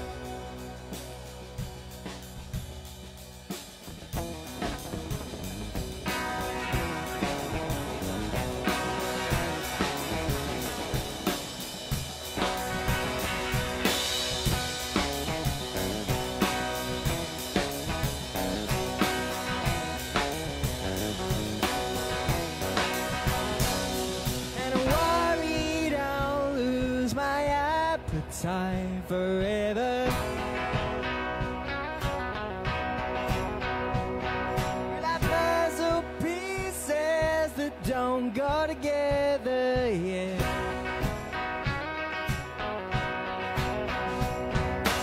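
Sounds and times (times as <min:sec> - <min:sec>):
drum kit beat: 0:00.0 - 0:45.0
electric guitar playing: 0:00.0 - 0:45.0.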